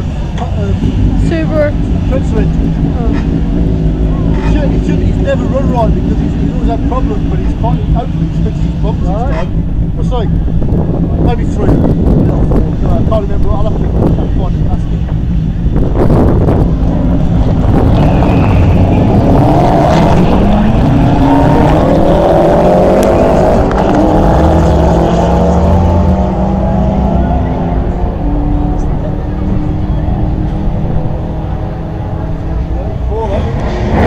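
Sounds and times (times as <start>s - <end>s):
drag car engine at full throttle: 0.0s - 34.0s.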